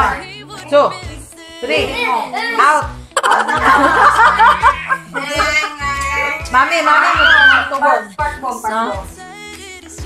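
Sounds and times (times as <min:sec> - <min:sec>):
background music with bass: 0:00.0 - 0:10.0
people laughing: 0:03.2 - 0:06.4.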